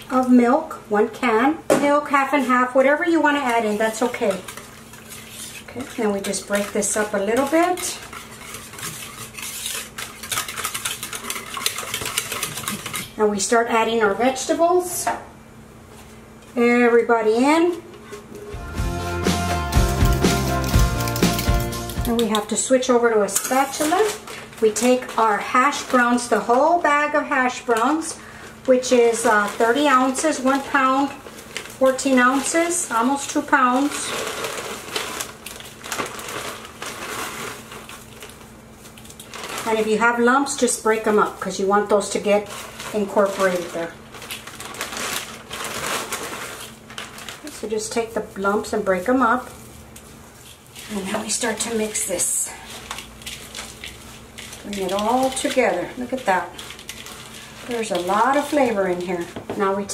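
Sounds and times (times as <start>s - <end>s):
whisk scraping bowl: 2.3s - 13.2s, 23.4s - 35.4s, 50.4s - 59.6s.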